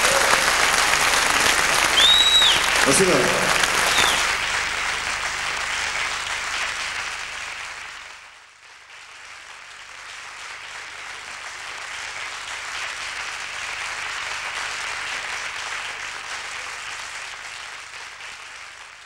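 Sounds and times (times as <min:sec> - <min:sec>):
audience applauding: 0:00.0 - 0:19.0.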